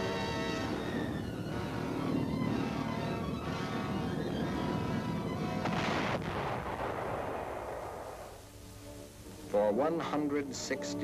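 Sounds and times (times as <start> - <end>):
background music: 0.0 - 11.0
sudden blast: 3.4 - 8.4.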